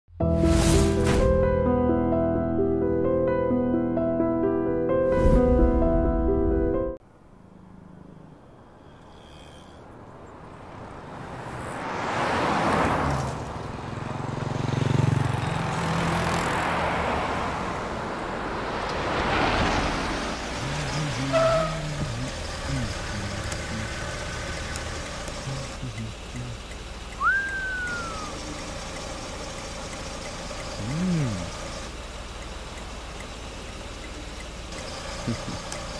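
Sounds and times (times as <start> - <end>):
cars driving past: 7.1 - 35.9
short high tone: 27.2 - 28.4
rising and falling tone: 27.2 - 28.6.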